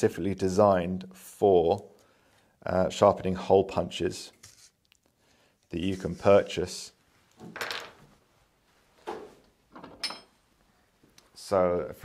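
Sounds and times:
metallic clink: 10.0s - 10.3s.

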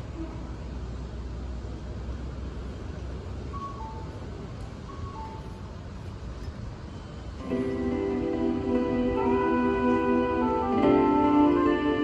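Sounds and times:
bus pulling in: 0.0s - 12.0s
street traffic rumble: 0.0s - 12.0s.

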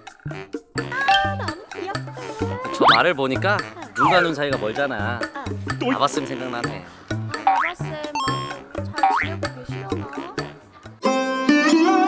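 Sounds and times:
playful comedy background music: 0.0s - 12.0s
cartoon boing sound effect: 1.0s - 1.5s, 7.5s - 9.3s.

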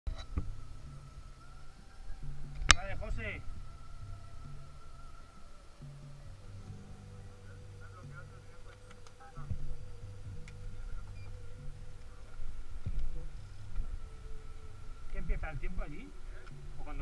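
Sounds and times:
muffled voices: 2.2s - 17.0s.

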